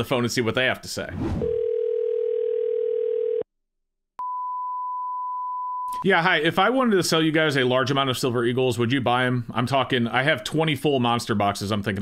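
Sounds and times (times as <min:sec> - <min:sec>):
telephone dial tone: 0:01.4 - 0:03.5.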